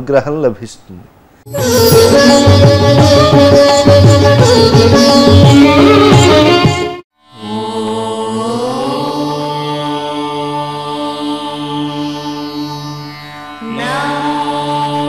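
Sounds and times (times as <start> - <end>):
devotional chant singing: 7.4 - 13.0, 13.6 - 15.0.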